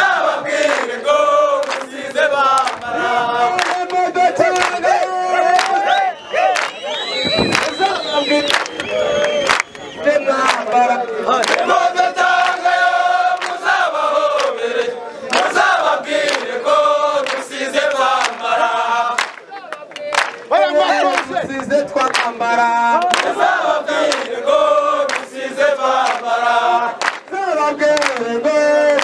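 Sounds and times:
crowd of men singing: 0:00.0 - 0:19.4, 0:20.5 - 0:29.0
hand claps: 0:00.6 - 0:00.9, 0:01.6 - 0:01.9, 0:02.5 - 0:02.9, 0:03.5 - 0:05.8, 0:06.5 - 0:09.8, 0:10.4 - 0:11.7, 0:13.3 - 0:13.7, 0:14.4 - 0:15.6, 0:16.2 - 0:16.6, 0:17.2 - 0:18.4, 0:19.1 - 0:23.4, 0:24.0 - 0:24.4, 0:25.0 - 0:25.3, 0:26.0 - 0:26.3, 0:27.0 - 0:29.0.

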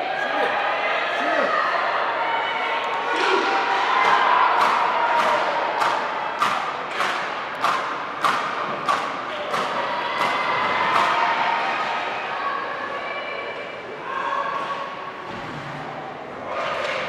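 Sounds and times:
crowd noise: 0:00.0 - 0:17.0
sharp rhythmic knocks: 0:04.0 - 0:11.2.

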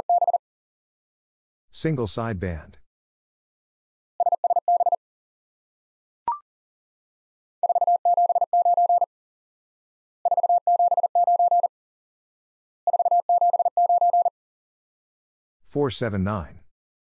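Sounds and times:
morse code tone: 0:00.0 - 0:00.4, 0:07.6 - 0:09.1, 0:10.3 - 0:11.7, 0:12.9 - 0:14.3.

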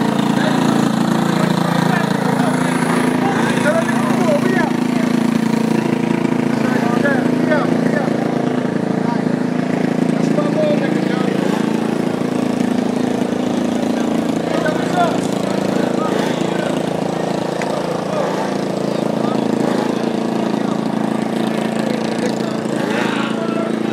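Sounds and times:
dirt bike engine idling: 0:00.0 - 0:23.9.

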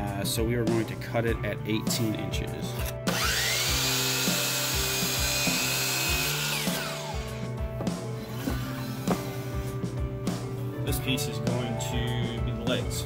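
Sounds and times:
miter saw cutting wood: 0:03.1 - 0:07.6.

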